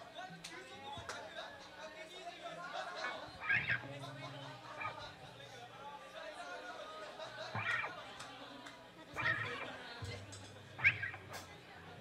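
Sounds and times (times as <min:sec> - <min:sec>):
high-pitched yelps: 0:03.4 - 0:03.8.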